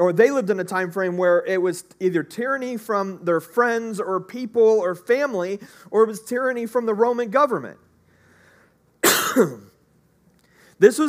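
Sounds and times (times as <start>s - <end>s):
faint intake of breath: 5.6s - 5.9s, 8.0s - 8.9s, 10.4s - 10.8s
man coughing: 9.0s - 9.8s.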